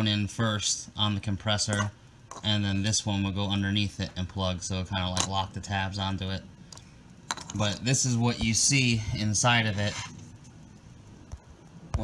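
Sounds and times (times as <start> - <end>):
handling on a tabletop: 6.7 - 12.0.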